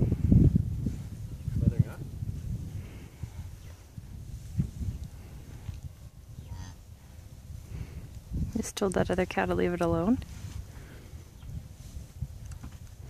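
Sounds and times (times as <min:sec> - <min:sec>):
cow making low soft calls: 0:05.6 - 0:06.9.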